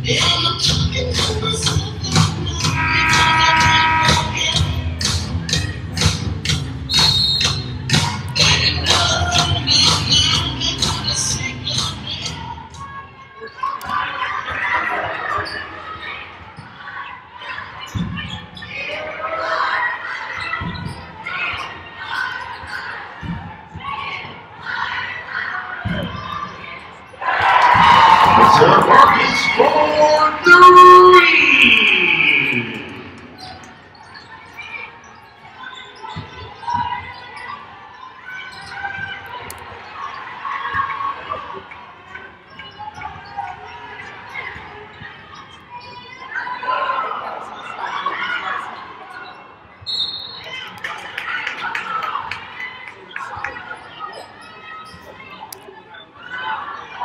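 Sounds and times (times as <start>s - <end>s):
voices echoing in arena: 0.0s - 57.0s
pitched tones: 2.6s - 4.5s.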